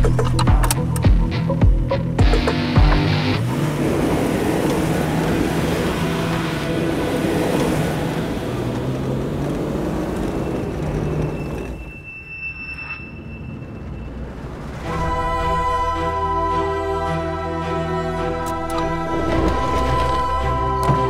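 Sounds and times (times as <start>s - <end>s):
car driving rush: 0.0s - 12.0s, 13.2s - 16.5s.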